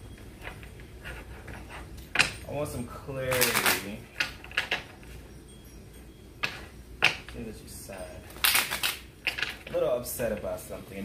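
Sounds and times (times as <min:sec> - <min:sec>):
faint room hum: 0:00.0 - 0:11.0
cards snapping: 0:08.4 - 0:09.4.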